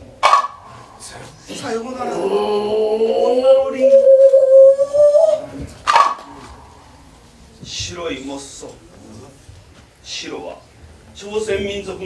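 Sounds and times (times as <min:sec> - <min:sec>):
man chanting a long note: 0:02.1 - 0:05.5
short sharp loud sound: 0:05.8 - 0:06.8.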